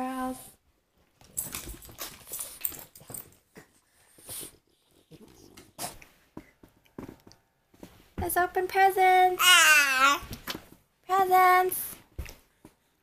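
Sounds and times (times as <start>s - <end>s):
dogs breathing noisily: 1.8s - 6.7s.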